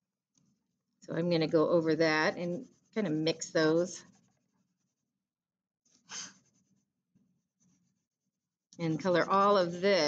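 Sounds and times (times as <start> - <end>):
crayon scratching on paper: 0.4 - 5.2, 5.9 - 10.0.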